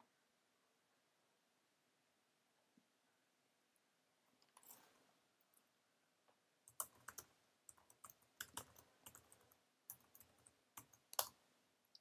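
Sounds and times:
faint typing on a keyboard: 4.3 - 5.7, 6.3 - 12.0.

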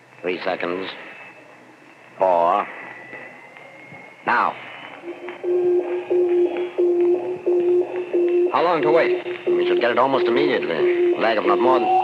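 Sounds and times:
pulsing low electronic beeps: 1.2 - 12.0.

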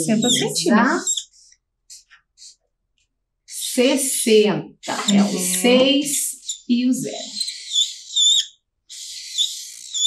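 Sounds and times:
marker squeaking on paper: 0.0 - 2.6, 4.8 - 10.0.

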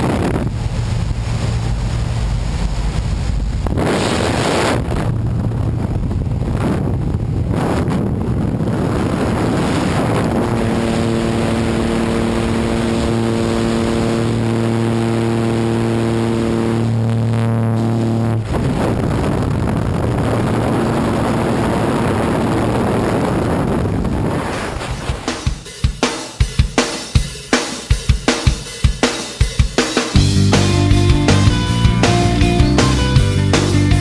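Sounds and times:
aircraft engine and propeller drone: 0.0 - 25.6
rushing wind: 0.0 - 25.6
freefall wind noise on microphone: 0.0 - 25.7, 30.0 - 34.0.

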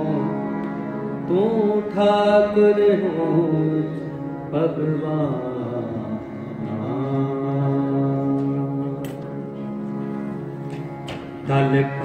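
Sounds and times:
harmonium chords: 0.0 - 12.0
man singing a hymn: 1.3 - 9.0, 11.4 - 12.0.

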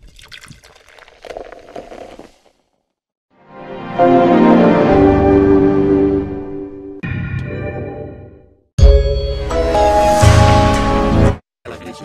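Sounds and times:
sustained music chord: 3.5 - 7.0.

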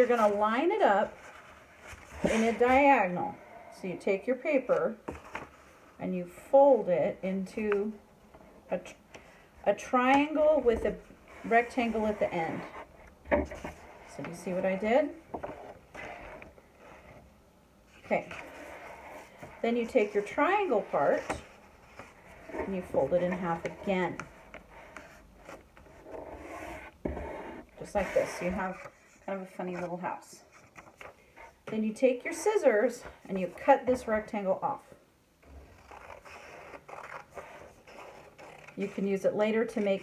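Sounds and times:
soft paper rustle: 35.4 - 40.0.

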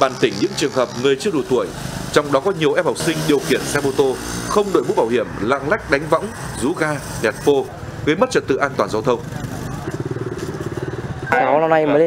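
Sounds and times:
small motorbike engine running: 0.0 - 7.8, 8.6 - 11.3.

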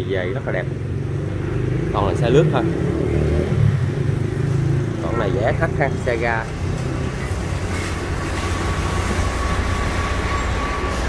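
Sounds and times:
vehicle rumble: 0.0 - 11.0.

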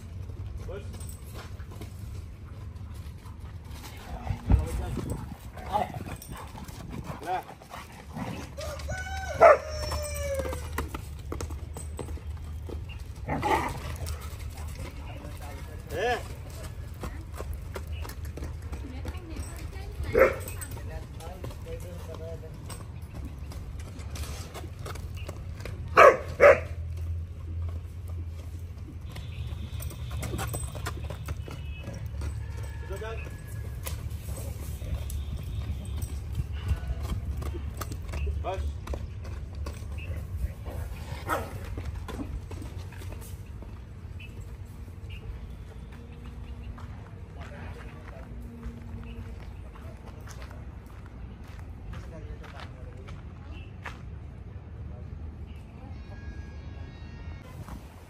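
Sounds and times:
horse hooves trotting on dirt: 0.0 - 54.7
dogs barking: 5.2 - 10.6, 20.0 - 20.7, 25.9 - 26.9, 41.2 - 41.6.

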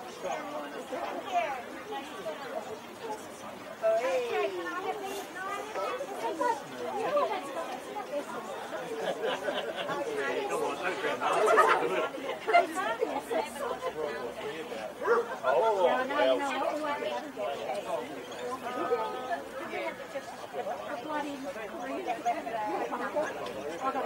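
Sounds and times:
people chattering: 0.0 - 24.0
dog barking: 15.0 - 15.4.

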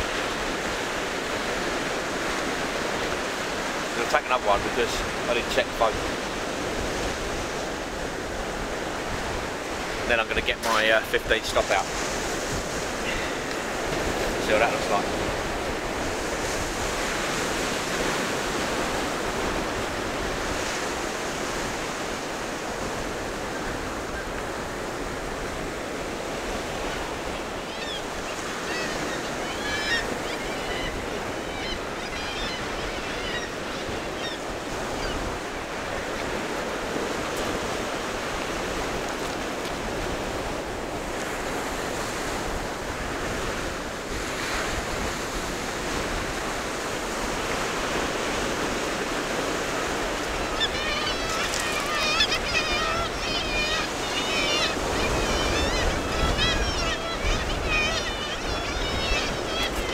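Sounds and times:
sea waves breaking on beach: 0.0 - 59.9.

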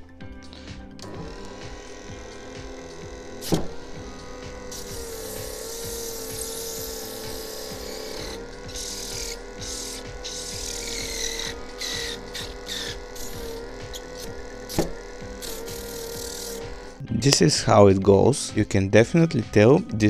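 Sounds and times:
disc sander motor hum: 0.0 - 17.8
background music: 0.0 - 20.0
silicone rubbing on sanding disc: 1.4 - 17.0.

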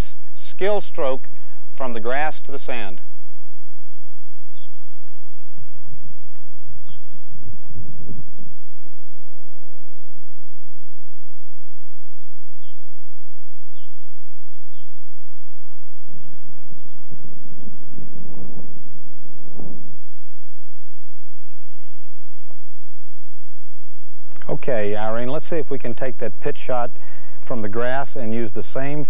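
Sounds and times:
low rumbling noise: 0.0 - 29.0
outdoor background noise: 0.0 - 29.0
bird chirping: 3.8 - 9.1, 10.6 - 20.1, 21.2 - 22.7.

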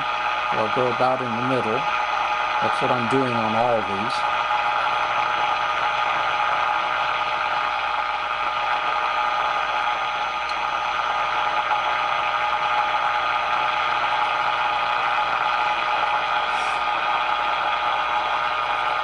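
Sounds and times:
radio static hiss: 15.4 - 17.1.

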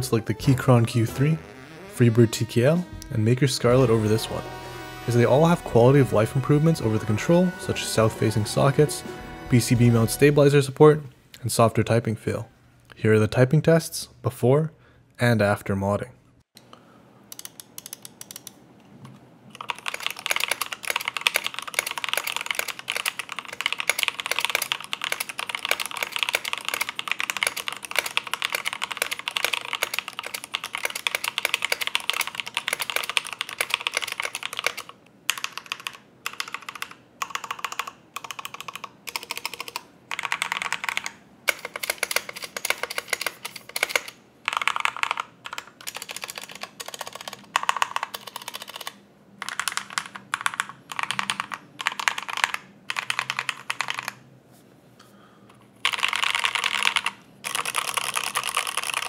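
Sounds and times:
typing on mechanical keyboard: 17.4 - 18.5, 19.5 - 54.2, 55.8 - 59.0.

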